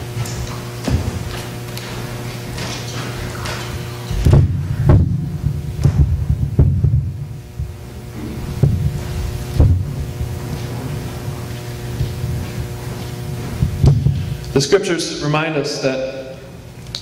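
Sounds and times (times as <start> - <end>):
heavy footsteps on wooden platform: 0.0 - 14.5
electrical hum: 0.0 - 17.0.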